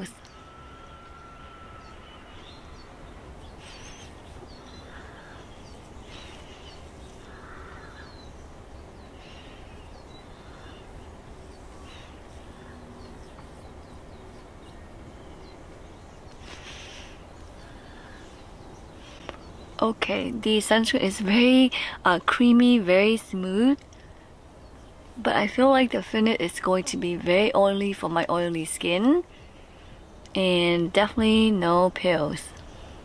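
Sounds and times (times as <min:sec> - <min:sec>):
steady low hum: 0:00.0 - 0:33.0
short bird calls: 0:00.1 - 0:08.4.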